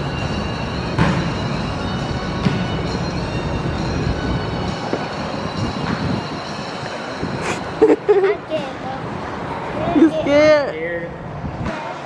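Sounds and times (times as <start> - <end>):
carousel mechanical rumble: 0.0 - 11.6.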